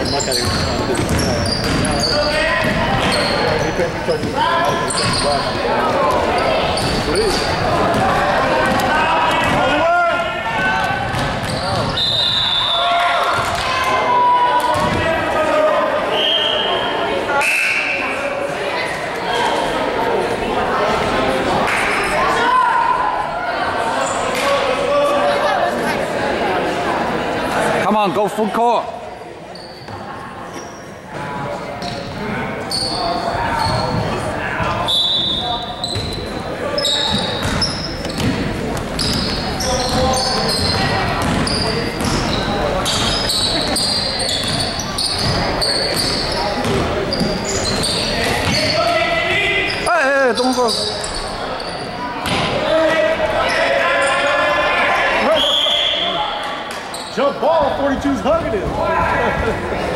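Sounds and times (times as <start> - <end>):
sneakers squeaking: 0.0 - 9.8, 10.6 - 13.9, 14.6 - 15.2, 29.5 - 54.3, 55.2 - 59.9
spectators talking and calling out: 0.0 - 59.9
referee whistle: 11.5 - 13.0, 16.1 - 18.2, 34.8 - 36.0, 55.2 - 56.4.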